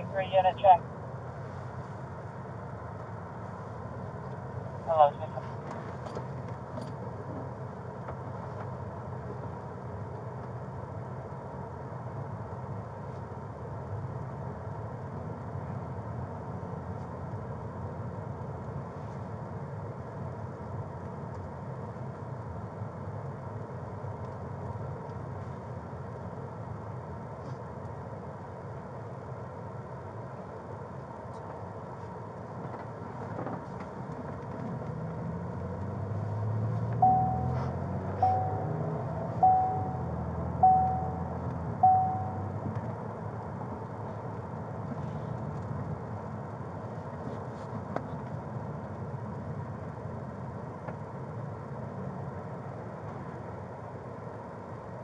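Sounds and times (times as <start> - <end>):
car engine and road rumble: 0.0 - 55.0
short electronic beeps: 37.0 - 42.6.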